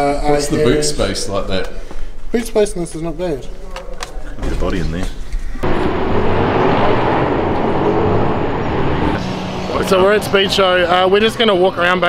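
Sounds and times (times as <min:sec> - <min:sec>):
passing cars: 0:05.6 - 0:12.0.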